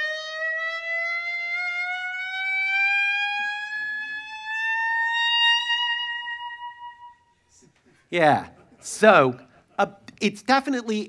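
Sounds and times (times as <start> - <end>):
clarinet rising glissando: 1.8 - 7.4.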